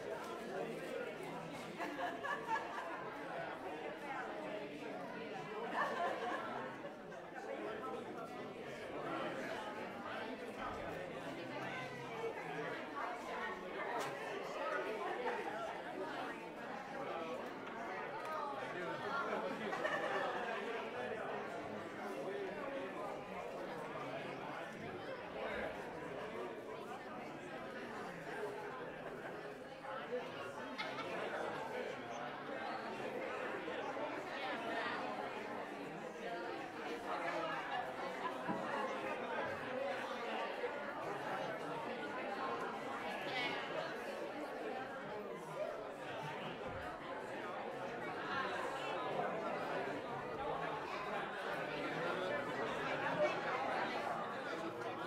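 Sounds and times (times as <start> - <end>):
crowd chatter in a hall: 0.0 - 55.0.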